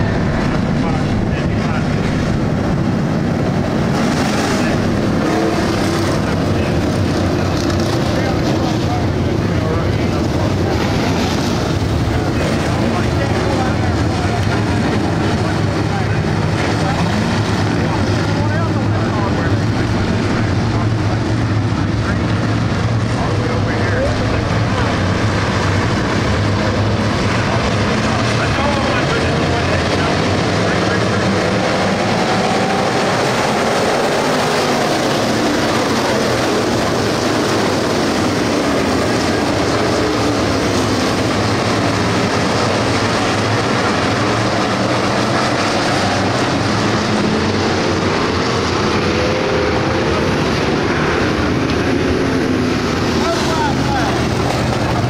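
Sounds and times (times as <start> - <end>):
race car engines roaring past: 0.0 - 55.0.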